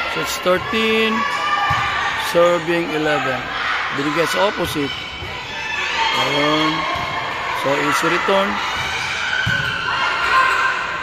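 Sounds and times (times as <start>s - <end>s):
crowd noise in gymnasium: 0.0s - 11.0s
volleyball thud: 1.6s - 2.2s, 6.2s - 7.5s, 8.6s - 10.0s.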